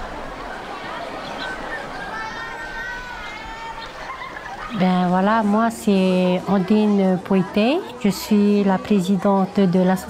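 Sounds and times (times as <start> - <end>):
distant voices: 0.0 - 10.0
outdoor background noise: 0.0 - 10.0.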